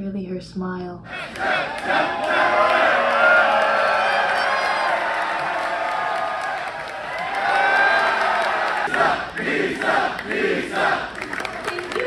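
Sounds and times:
crowd cheering and shouting: 1.1s - 10.9s.

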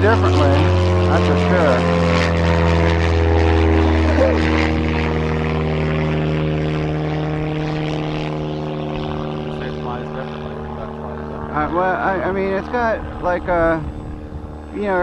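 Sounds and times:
model plane motor droning: 0.0s - 15.0s.

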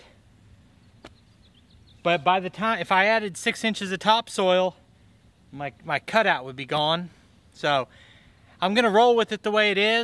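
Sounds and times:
high bird chirps: 0.8s - 2.2s.

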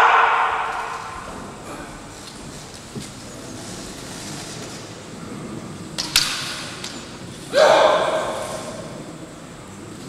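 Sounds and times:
hall background noise: 0.0s - 10.0s
bamboo swords clacking: 6.0s - 7.1s.

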